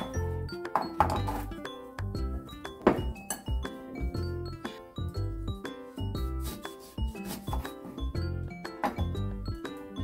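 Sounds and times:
background music with bass: 0.0s - 10.0s.

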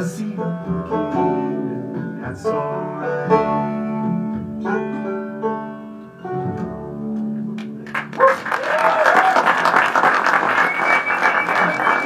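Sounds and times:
audience applauding and cheering: 7.6s - 12.0s
long high whistle: 10.5s - 12.0s.

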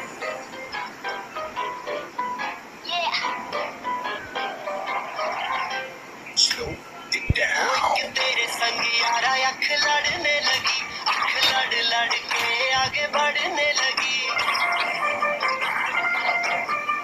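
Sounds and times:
pop song with singing: 6.5s - 15.3s.

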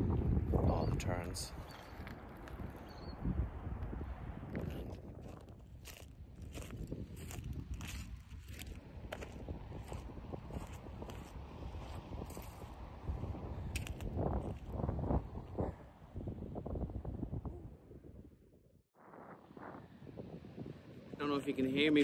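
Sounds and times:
wind buffeting microphone: 0.0s - 22.0s
footsteps on shingle: 4.5s - 14.8s.

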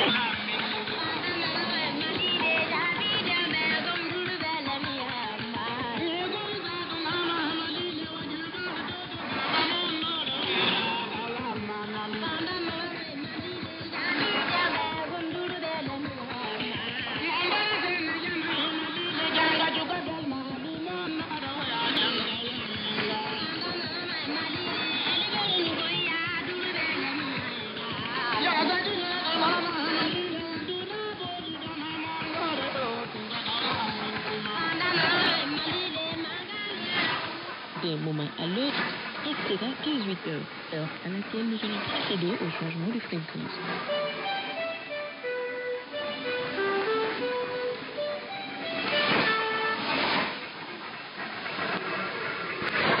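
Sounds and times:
muffled radio music: 0.0s - 53.0s
steady radio hiss: 0.0s - 53.0s.

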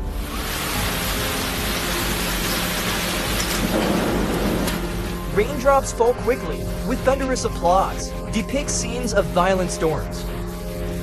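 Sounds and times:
heavy rain in strong wind: 0.0s - 5.8s.

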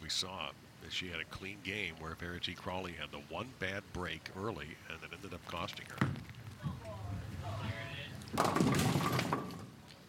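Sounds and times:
bowling ball rolling: 5.9s - 9.8s
bowling pins crashing: 8.2s - 9.8s.

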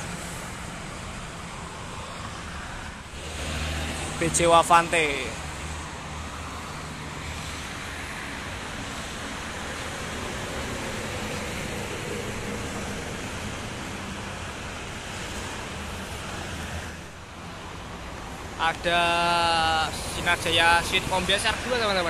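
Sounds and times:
motorway traffic noise: 0.0s - 22.0s.

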